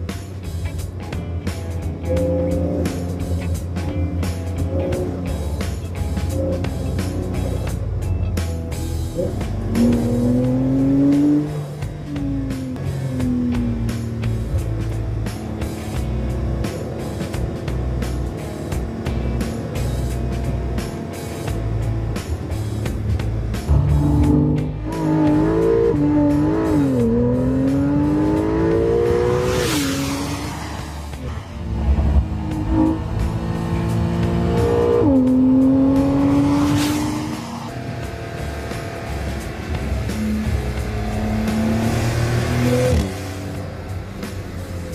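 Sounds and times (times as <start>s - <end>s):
background music: 0.0s - 44.9s
car engine accelerating hard: 0.4s - 8.0s, 8.8s - 44.9s.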